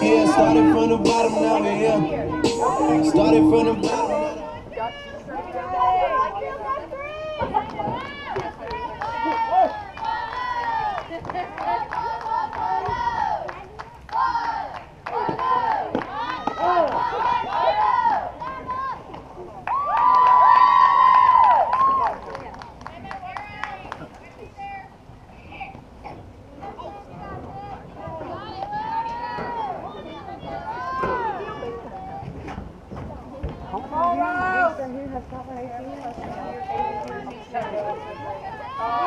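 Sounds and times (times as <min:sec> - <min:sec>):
girls chanting and cheering: 0:00.0 - 0:19.1.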